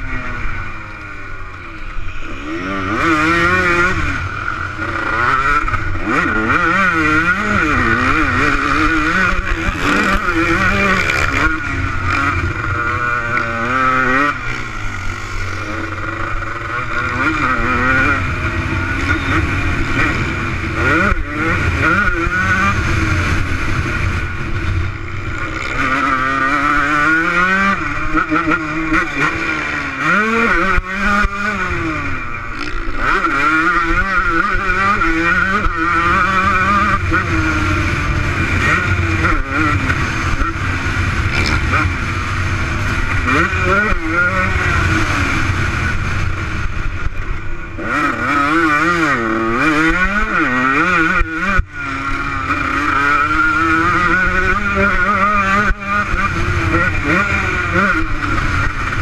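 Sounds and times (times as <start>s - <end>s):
motocross bike engine revving: 0.0s - 59.0s.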